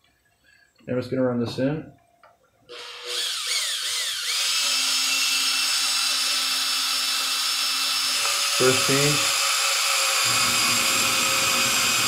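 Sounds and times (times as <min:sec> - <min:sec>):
cordless drill motor running: 0:02.7 - 0:12.0.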